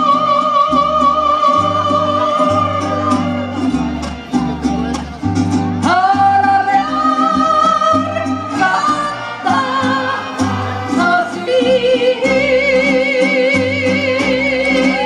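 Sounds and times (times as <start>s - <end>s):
woman singing with vibrato: 0.0s - 3.4s, 5.8s - 15.0s
strings: 0.9s - 15.0s.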